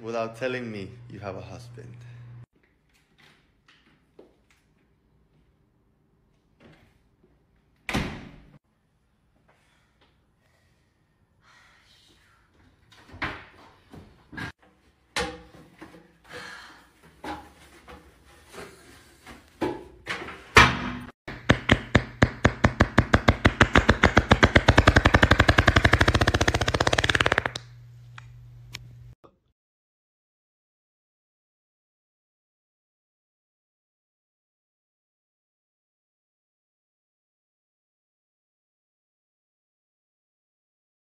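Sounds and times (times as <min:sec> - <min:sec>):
steady low hum: 0:00.1 - 0:02.5, 0:24.2 - 0:29.2
door slamming shut: 0:07.9 - 0:08.5
rapid sharp beats: 0:21.3 - 0:27.6.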